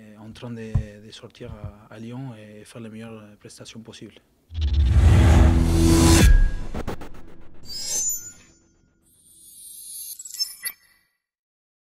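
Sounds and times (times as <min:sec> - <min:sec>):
sharp hits: 0:04.6 - 0:07.7.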